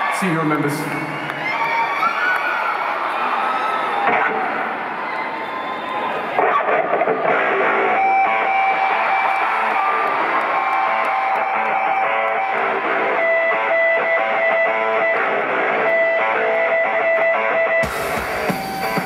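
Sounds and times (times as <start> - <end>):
electric guitar solo: 6.4 - 19.0.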